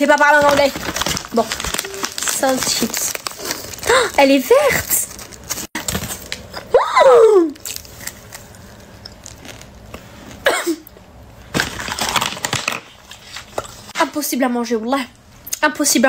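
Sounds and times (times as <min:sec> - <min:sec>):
chip crunching: 0:00.0 - 0:06.7, 0:07.5 - 0:10.4, 0:11.5 - 0:13.7
person exclaiming: 0:06.7 - 0:07.6.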